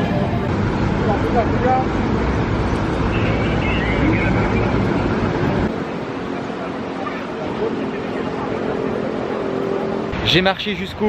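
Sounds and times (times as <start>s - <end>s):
low rumble of traffic: 0.0s - 11.0s
faint distant voices: 3.1s - 10.0s.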